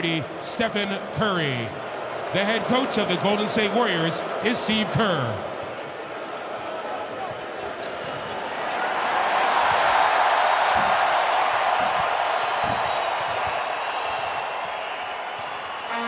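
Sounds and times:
arena crowd noise: 0.0s - 16.0s.

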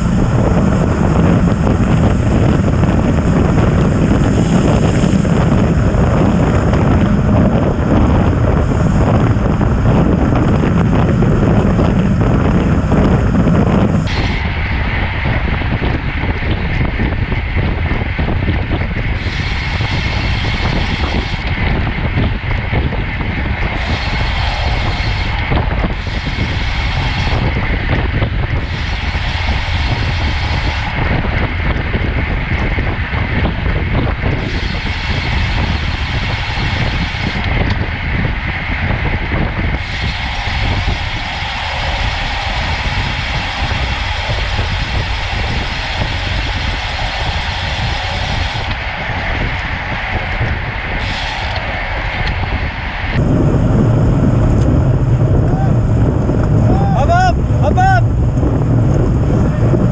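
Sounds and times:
road noise: 0.0s - 59.9s
wind buffeting microphone: 0.0s - 59.9s.

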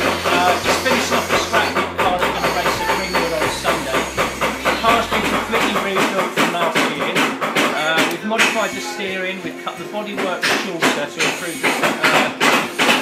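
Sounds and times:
man talking: 0.1s - 12.4s.

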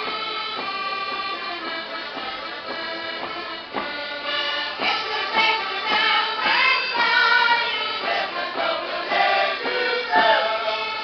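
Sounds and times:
accordion: 0.0s - 11.0s
girls singing folk song: 4.7s - 11.0s.

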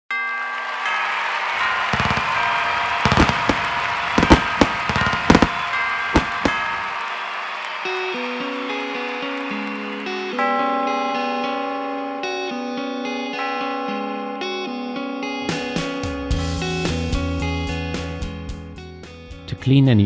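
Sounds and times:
fireworks bangs and crackles: 1.8s - 7.1s
background music: 3.0s - 20.0s.

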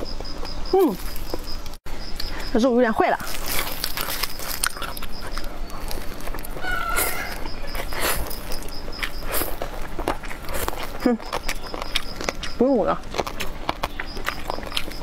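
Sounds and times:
noodles slurped and chewed: 3.2s - 15.0s.

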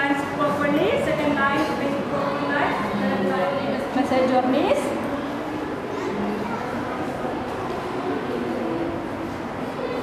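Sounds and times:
faint indistinct voices: 0.0s - 10.0s
room noise in large hall: 0.0s - 10.0s.

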